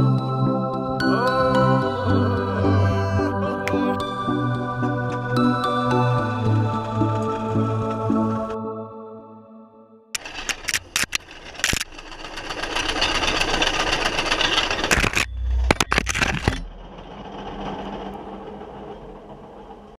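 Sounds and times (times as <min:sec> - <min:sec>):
sharp clicks: 0:10.2 - 0:16.6
rail cart rattling on rails: 0:10.2 - 0:20.0.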